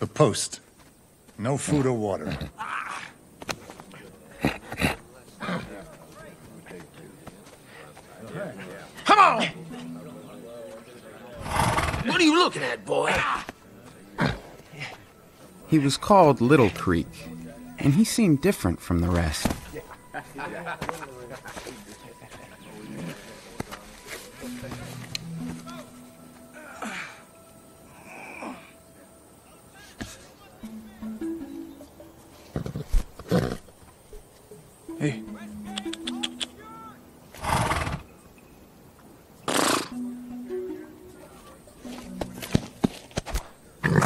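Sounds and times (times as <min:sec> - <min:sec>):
horse fluttering snort: 0:11.4 - 0:12.0, 0:39.5 - 0:39.9
horse snorting: 0:11.4 - 0:12.1, 0:14.2 - 0:14.6, 0:32.6 - 0:33.6, 0:37.4 - 0:38.1, 0:39.5 - 0:39.9.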